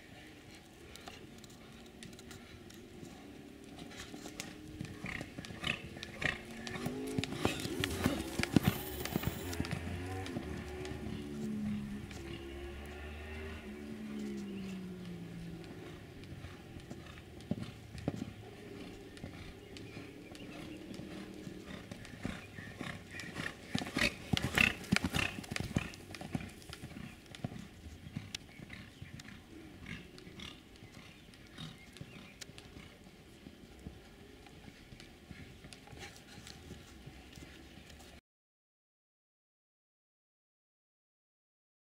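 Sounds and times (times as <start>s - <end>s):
horse hoofbeats on sand: 1.5s - 38.2s.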